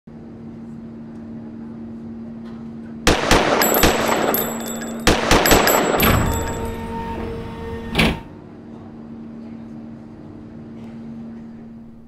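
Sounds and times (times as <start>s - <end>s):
steady low hum: 0.1s - 12.0s
high ringing: 3.4s - 8.0s.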